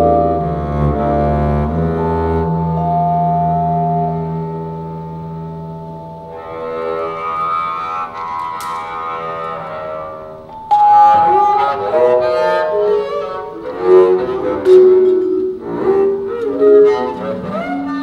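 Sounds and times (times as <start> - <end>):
bowed double bass low note: 0.0 - 8.4
vibraphone: 10.5 - 13.5.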